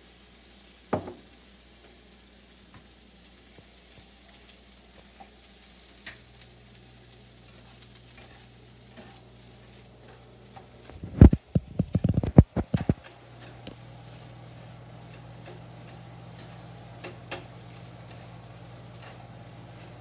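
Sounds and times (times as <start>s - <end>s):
rice sizzling in a pan: 0.0s - 20.0s
chopsticks tapping a pan: 6.0s - 6.3s, 12.0s - 14.2s, 14.8s - 20.0s.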